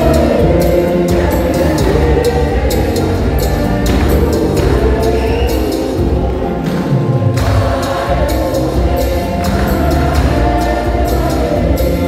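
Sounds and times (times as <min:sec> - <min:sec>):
choir and congregation singing a hymn: 0:00.0 - 0:12.0
musical accompaniment with steady beat: 0:00.0 - 0:12.0.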